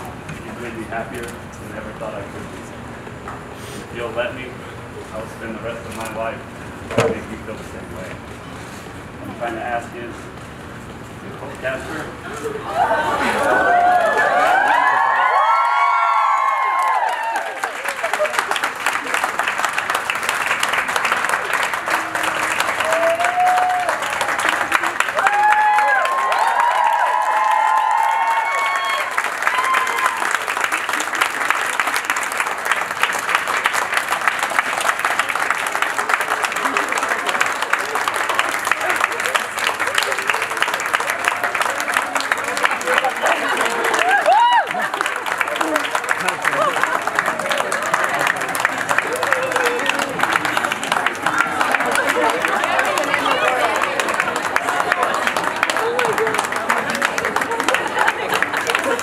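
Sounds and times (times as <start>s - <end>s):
voices shouting and whooping: 12.4s - 18.3s, 25.2s - 30.4s, 42.8s - 48.1s, 49.0s - 50.2s
audience clapping: 12.7s - 59.0s.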